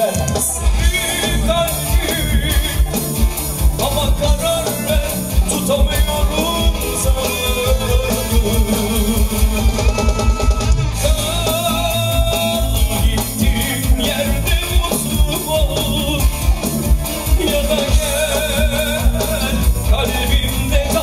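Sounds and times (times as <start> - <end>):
live band playing: 0.0 - 21.0
man singing: 0.0 - 21.0.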